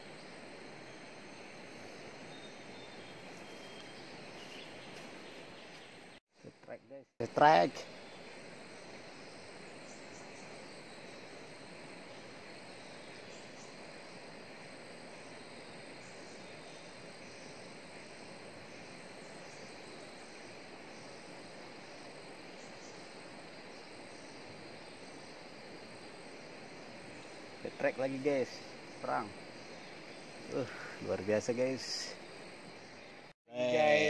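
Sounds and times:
background hiss: 0:00.0 - 0:34.0
insects chirping: 0:00.0 - 0:34.0.

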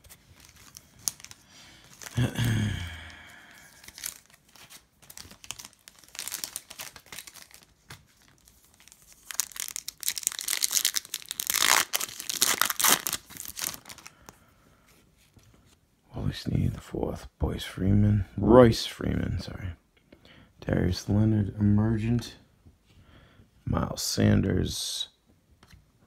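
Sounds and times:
foil wrapper crinkling and tearing: 0:00.0 - 0:02.8, 0:03.6 - 0:14.1.

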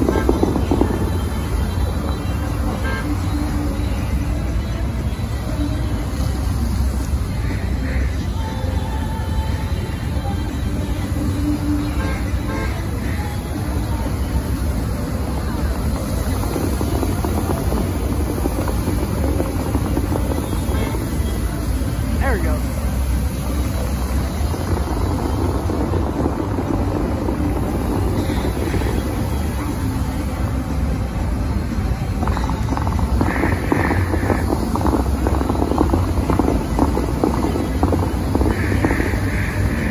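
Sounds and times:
water jets spraying and falling: 0:00.0 - 0:39.9.

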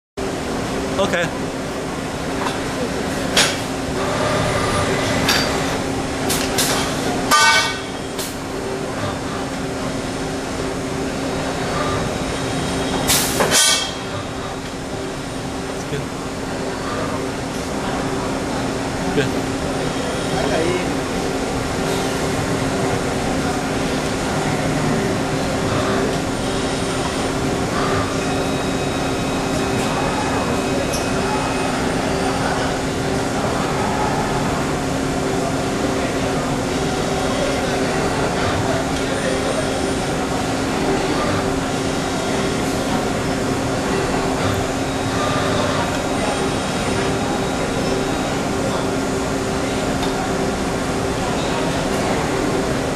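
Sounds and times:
tube bending machine humming: 0:00.2 - 0:52.9.

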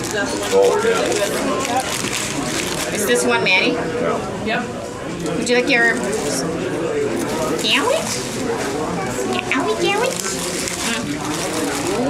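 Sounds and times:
paper wrapper crinkling: 0:00.0 - 0:03.0, 0:07.5 - 0:12.0.

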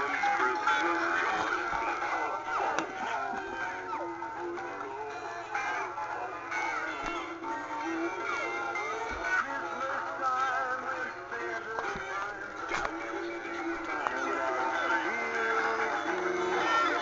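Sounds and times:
tinny electronic songs with synthetic singing: 0:00.0 - 0:17.0.

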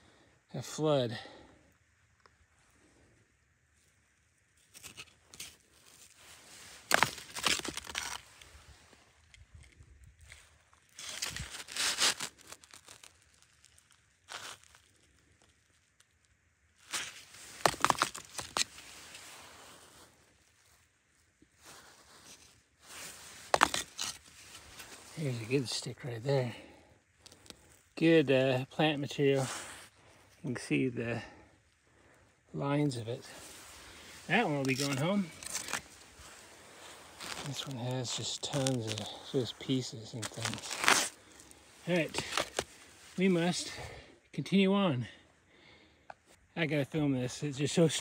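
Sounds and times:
stone rubble crunching and scraping: 0:23.4 - 0:25.0, 0:34.2 - 0:36.5, 0:40.0 - 0:42.8.

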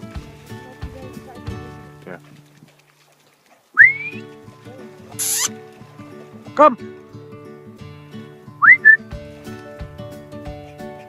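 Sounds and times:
background music: 0:00.0 - 0:02.6, 0:03.8 - 0:11.0
person whistling: 0:03.8 - 0:04.2, 0:05.2 - 0:05.5, 0:08.6 - 0:09.0.

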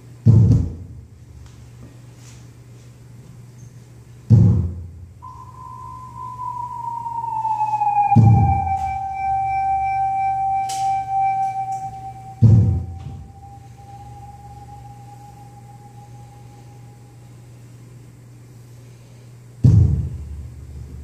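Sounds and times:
held tone sliding down: 0:05.2 - 0:17.2.

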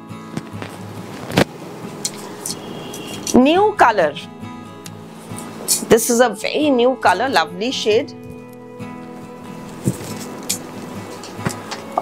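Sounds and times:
silk fabric rustling: 0:09.6 - 0:11.7.

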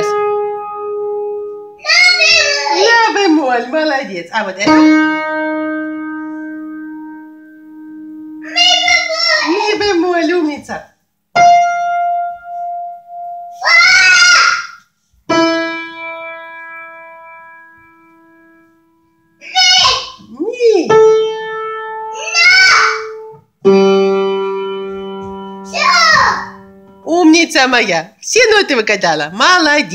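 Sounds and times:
small child calling out: 0:01.8 - 0:03.1, 0:08.4 - 0:09.8, 0:13.6 - 0:14.8, 0:19.4 - 0:20.3, 0:22.2 - 0:23.2, 0:25.7 - 0:26.6.

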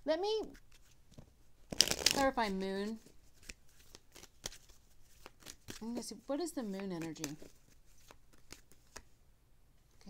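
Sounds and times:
shuffling cards: 0:00.4 - 0:09.1
soft snaps of cards: 0:03.0 - 0:06.0, 0:06.6 - 0:09.1.

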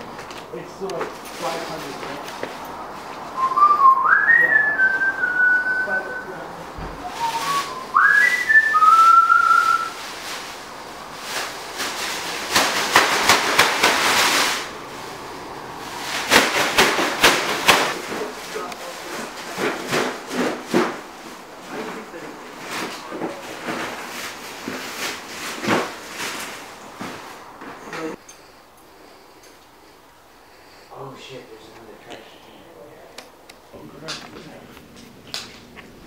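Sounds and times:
person whistling a tune: 0:03.4 - 0:06.4, 0:07.0 - 0:10.0
bursts of hissy noise: 0:07.0 - 0:18.4.

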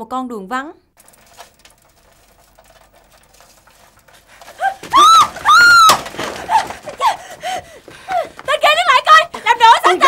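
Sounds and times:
bicycle crashing: 0:01.0 - 0:08.4
woman screaming: 0:04.6 - 0:06.6.

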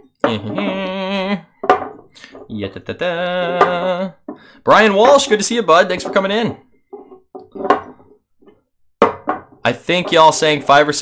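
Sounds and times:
glass clacking down on wood: 0:01.6 - 0:02.5, 0:05.9 - 0:10.8
glasses moved on wooden table: 0:05.9 - 0:10.3.

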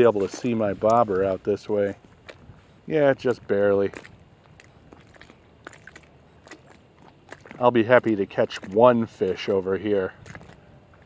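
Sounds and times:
faint clicks and crackles: 0:10.1 - 0:11.0.

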